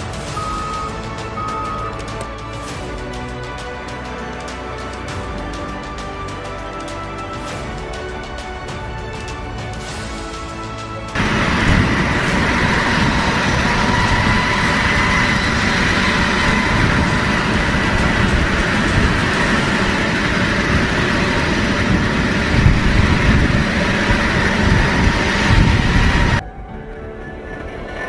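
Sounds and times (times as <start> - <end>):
jet engines whining: 0.0 - 28.0.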